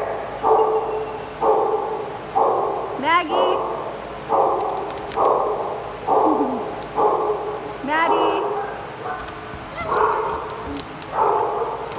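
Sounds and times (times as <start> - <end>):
dog barking: 0.0 - 7.5, 8.1 - 11.9
dog yelping: 8.1 - 11.9.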